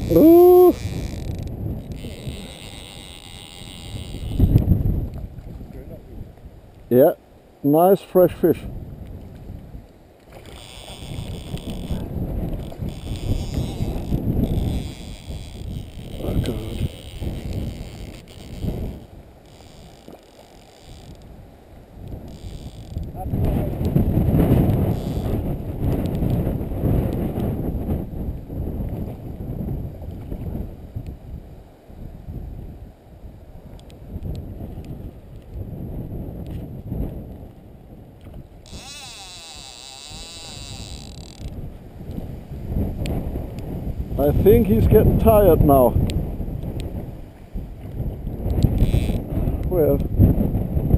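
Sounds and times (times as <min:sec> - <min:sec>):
wind buffeting microphone: 0:00.0 - 0:07.2, 0:08.0 - 0:50.9
flowing river: 0:00.0 - 0:27.5, 0:36.9 - 0:45.9.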